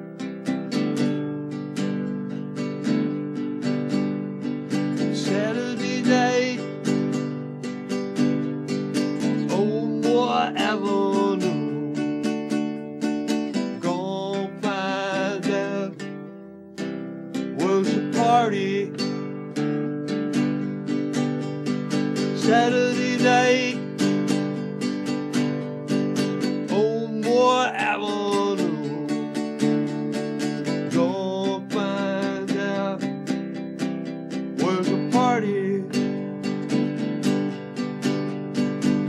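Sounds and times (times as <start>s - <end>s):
acoustic guitar strumming: 0.0s - 39.0s
man singing: 4.7s - 7.4s, 8.9s - 12.6s, 13.3s - 16.4s, 17.3s - 20.4s, 21.9s - 36.8s.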